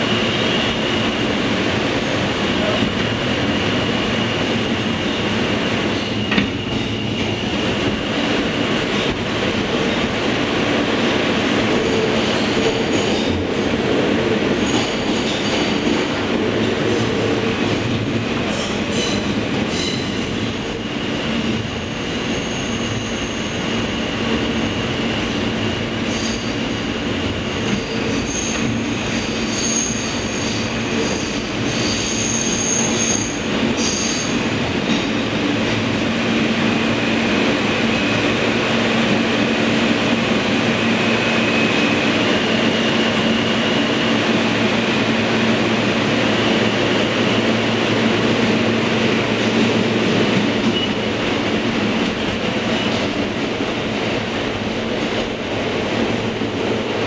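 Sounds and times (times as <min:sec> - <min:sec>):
subway train wheels rumbling: 0:00.0 - 0:57.0.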